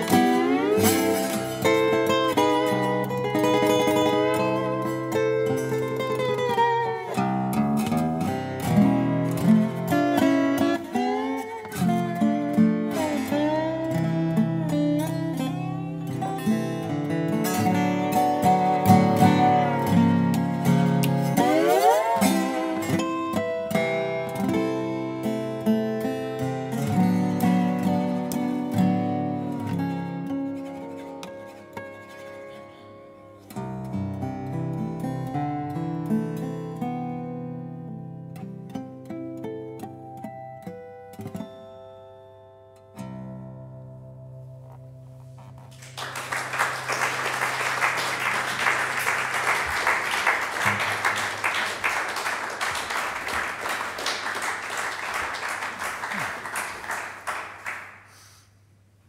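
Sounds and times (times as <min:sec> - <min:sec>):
slide guitar melody: 0:00.0 - 0:55.2
audience applause: 0:45.7 - 0:58.2.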